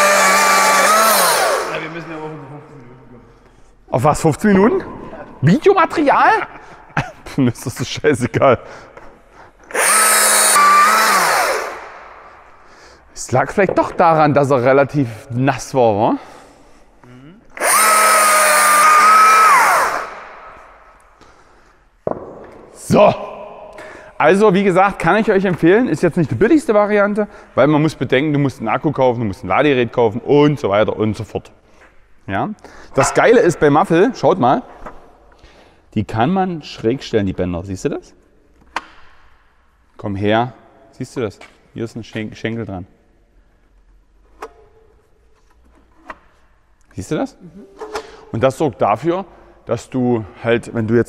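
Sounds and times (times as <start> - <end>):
chainsaw cutting and winding down: 0.0 - 1.9, 9.7 - 12.0, 17.6 - 20.3.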